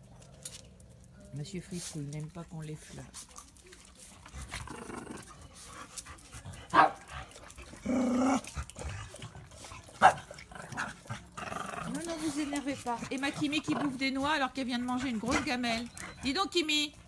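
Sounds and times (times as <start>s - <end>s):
dog growling: 4.3s - 5.5s, 7.1s - 15.6s
dogs barking: 6.7s - 7.4s, 9.8s - 12.1s.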